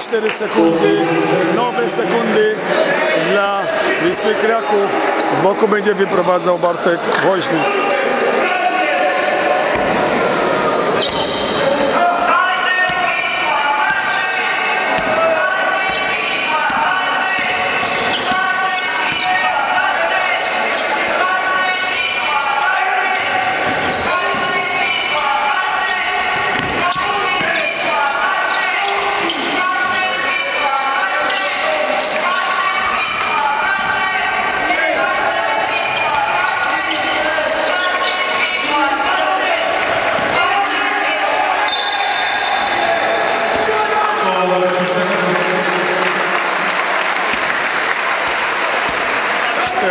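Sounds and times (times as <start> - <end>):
crowd voices: 0.0 - 49.9
players shouting: 0.4 - 49.9.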